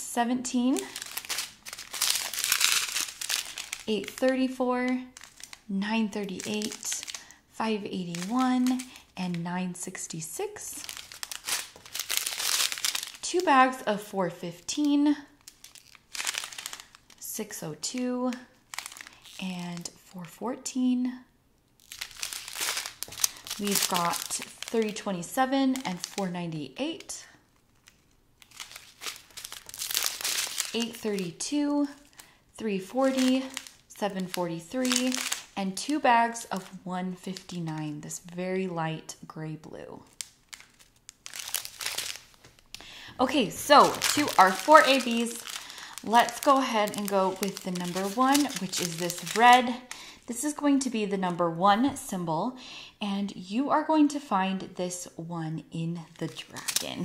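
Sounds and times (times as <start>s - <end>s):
plastic bags crinkling: 0.6s - 13.9s, 14.8s - 20.0s, 21.8s - 38.1s, 40.0s - 50.3s, 56.0s - 57.0s.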